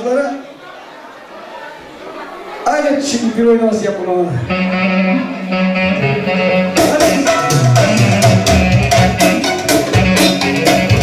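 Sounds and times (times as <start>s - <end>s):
live band with drums: 5.8s - 11.0s.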